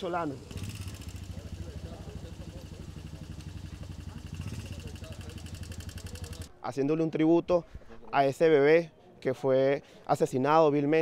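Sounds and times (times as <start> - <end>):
faint voices: 0.0 - 6.6.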